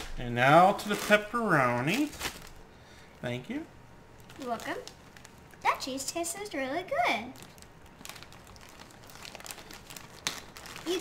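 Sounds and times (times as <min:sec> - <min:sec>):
plastic package crinkling: 0:00.0 - 0:02.6, 0:04.2 - 0:05.6, 0:07.3 - 0:11.0.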